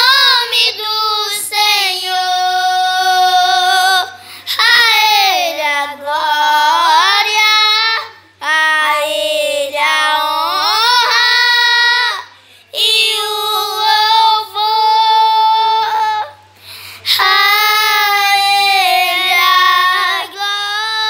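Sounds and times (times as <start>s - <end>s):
children singing unaccompanied: 0.0s - 16.4s, 17.1s - 21.0s.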